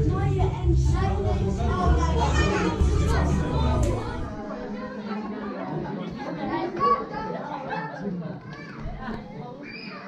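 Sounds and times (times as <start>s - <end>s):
background music: 0.0s - 4.5s
people and children chattering: 0.0s - 10.0s.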